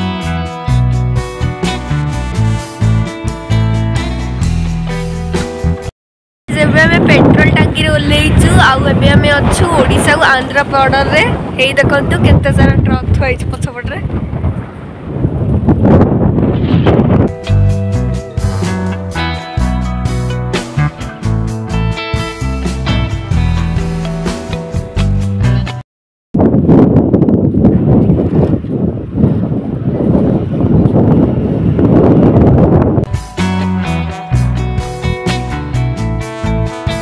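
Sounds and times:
guitar music: 0.0s - 5.9s, 16.7s - 25.8s, 33.1s - 37.0s
wind buffeting microphone: 6.5s - 19.0s, 26.4s - 33.1s.

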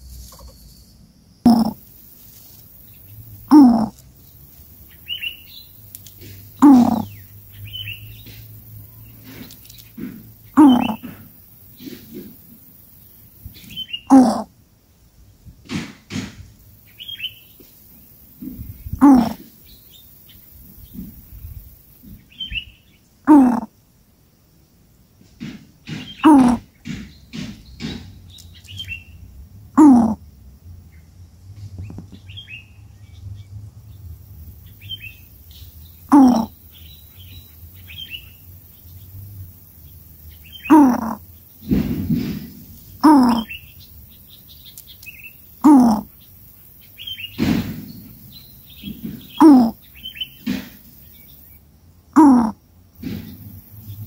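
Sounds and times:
harsh bird calls falling in pitch: 0.3s - 1.9s, 3.4s - 4.0s, 4.8s - 8.4s, 9.1s - 11.2s, 13.6s - 14.5s, 16.8s - 17.7s, 18.5s - 21.0s, 22.2s - 23.7s, 25.8s - 29.2s, 29.8s - 30.2s, 34.7s - 38.5s, 40.4s - 46.3s, 46.9s - 52.6s
dull bumps: 8.1s - 12.6s, 15.6s - 16.6s, 25.2s - 28.4s, 40.7s - 43.5s, 47.0s - 51.1s, 53.0s - 54.0s.

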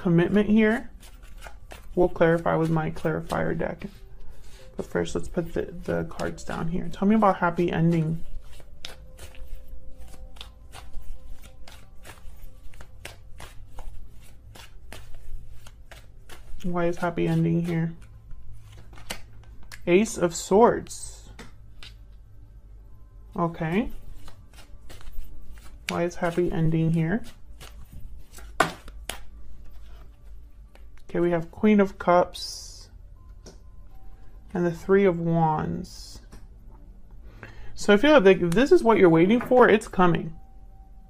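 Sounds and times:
cards being shuffled: 0.2s - 19.9s, 21.3s - 22.2s, 23.7s - 31.1s
cards tapping on a table: 28.3s - 29.3s.

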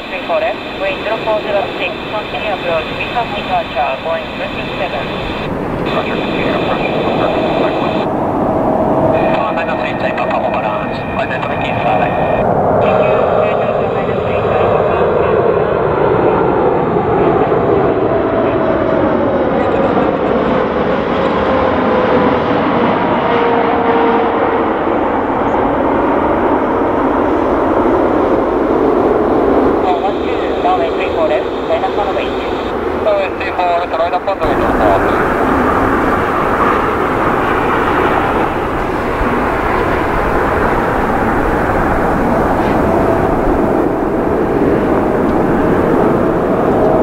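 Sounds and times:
jet aircraft passing overhead: 0.0s - 47.0s
jet engine whine: 0.0s - 47.0s.

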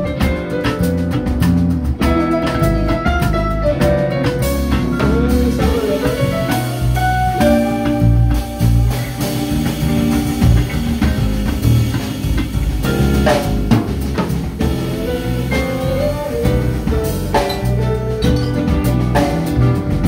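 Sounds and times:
bass guitar: 0.0s - 20.0s
drum kit steady beat: 0.0s - 20.0s
electric guitars: 0.0s - 20.0s.

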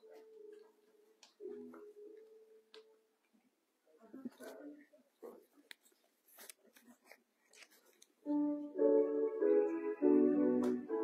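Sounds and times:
keyboard playing sustained chords: 8.3s - 11.0s.

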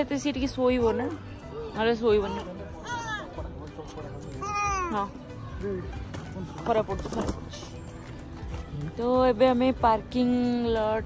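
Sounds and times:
baby squealing: 4.4s - 5.0s.

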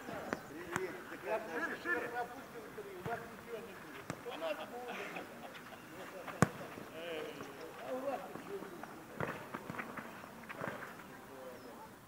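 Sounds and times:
players' voices and shouts: 0.0s - 5.4s
football kick: 6.4s - 6.6s.

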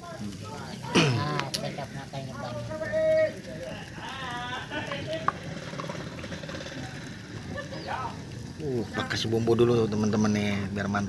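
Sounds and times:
steady low background noise: 0.0s - 11.0s
indistinct vocal sounds: 0.2s - 2.1s.

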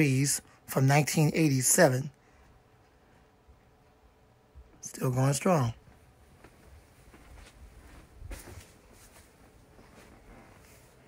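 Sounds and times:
ceiling fan humming: 0.0s - 11.0s.

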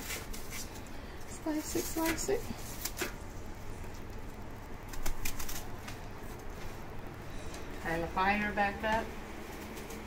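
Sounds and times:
knife slicing onion: 0.0s - 0.8s
low steady hum: 0.0s - 10.0s.

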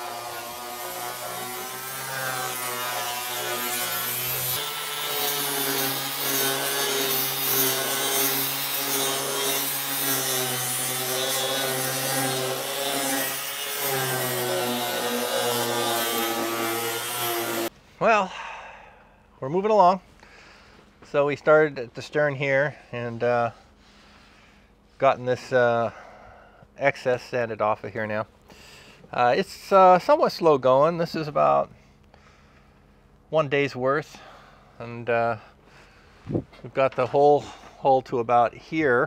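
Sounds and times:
angle grinder sanding: 0.0s - 17.7s.

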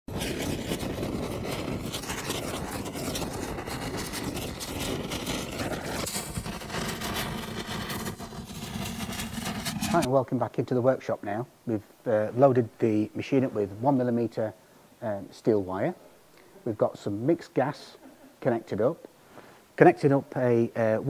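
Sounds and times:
crackling sparks: 0.0s - 10.1s
low rumble: 1.6s - 10.1s.

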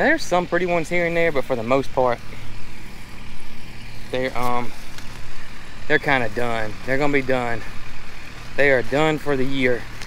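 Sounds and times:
tractor engine idling: 0.0s - 10.0s.

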